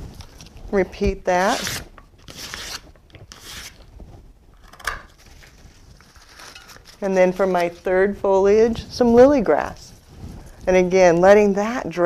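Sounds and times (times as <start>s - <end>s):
knife scraping a leaf: 1.4s - 3.9s, 5.2s - 7.7s.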